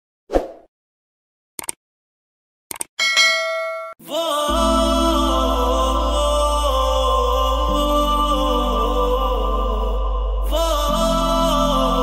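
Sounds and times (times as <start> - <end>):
quick clicks: 1.6 - 1.8, 2.7 - 2.9
bright bell-like ding: 3.0 - 4.0.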